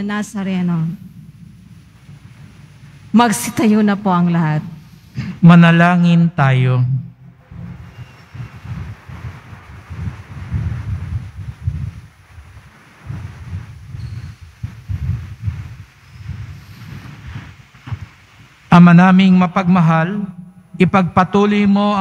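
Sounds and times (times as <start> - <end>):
low rumbling room noise: 0.0 - 22.0
crowd shuffling and stirring: 7.3 - 18.7.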